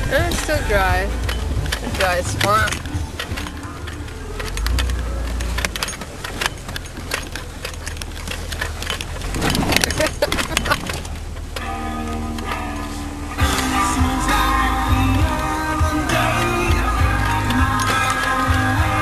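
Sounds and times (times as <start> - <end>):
music: 0.0 - 7.3, 11.6 - 19.0
knocks and rattles from bumps: 0.0 - 19.0
vehicle engine and road rumble: 0.0 - 19.0.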